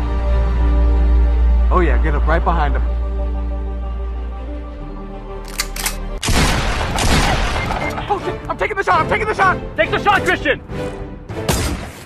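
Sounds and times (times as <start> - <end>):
background music sustained chord: 0.0 - 11.8
short clicks: 5.4 - 6.0
gunshot sound effects: 6.2 - 7.9, 11.4 - 12.0.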